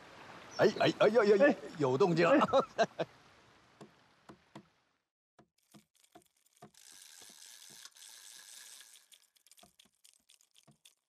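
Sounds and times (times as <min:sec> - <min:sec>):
fishing reel clicks: 0:05.9 - 0:10.6.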